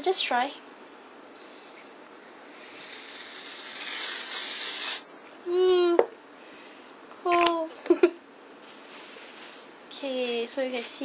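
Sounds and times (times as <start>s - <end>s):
aerosol can spraying hiss: 2.5s - 5.1s.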